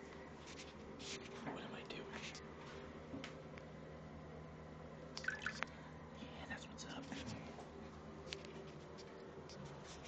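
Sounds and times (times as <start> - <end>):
water dripping in toilet bowl: 5.2 - 5.7.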